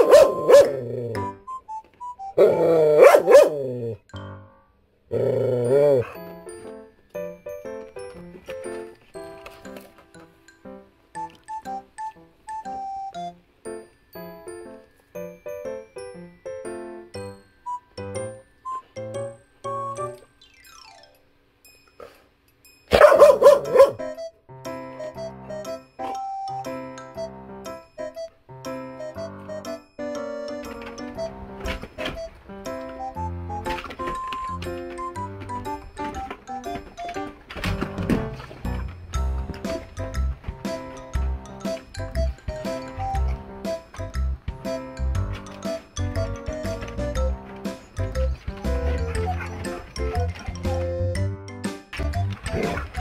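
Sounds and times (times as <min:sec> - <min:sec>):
dog barking: 0:00.0 - 0:00.9, 0:02.4 - 0:03.7, 0:22.9 - 0:24.1
background music: 0:00.0 - 0:21.4, 0:22.9 - 0:53.0.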